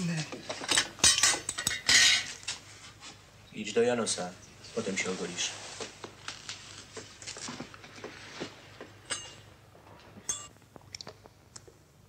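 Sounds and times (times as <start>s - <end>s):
metal and glass items clinking: 10.2s - 10.5s.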